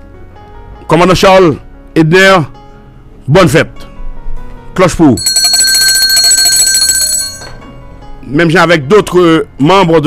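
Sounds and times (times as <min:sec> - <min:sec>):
bell ringing with rapid trill: 0:05.2 - 0:07.6.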